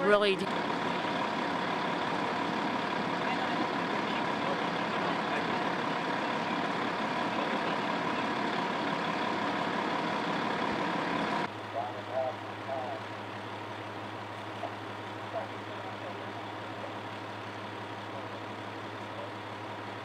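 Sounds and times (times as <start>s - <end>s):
large vehicle engine idling: 0.0s - 20.0s.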